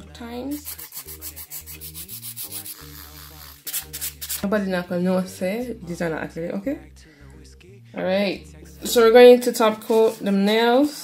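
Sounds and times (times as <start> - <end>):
background music with bass line: 0.0 - 10.5
nail file rasping: 0.5 - 4.5.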